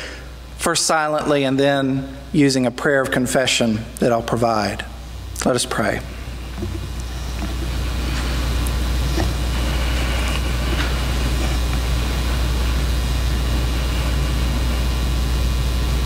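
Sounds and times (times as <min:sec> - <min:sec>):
low electrical hum with hiss: 0:00.0 - 0:16.0.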